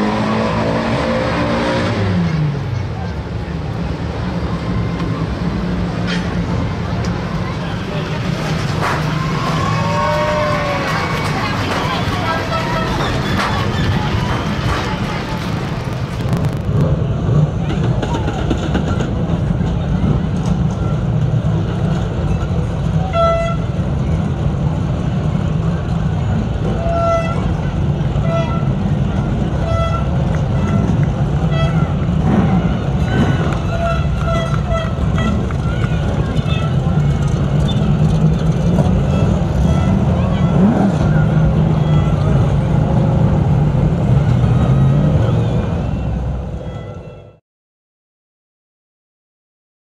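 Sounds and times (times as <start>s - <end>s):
engine rumble: 0.0s - 47.4s
voices: 2.2s - 16.3s, 25.4s - 47.0s
vehicle horns tooting: 10.0s - 15.1s, 23.0s - 23.8s, 26.7s - 37.2s, 38.9s - 42.9s, 44.5s - 47.4s.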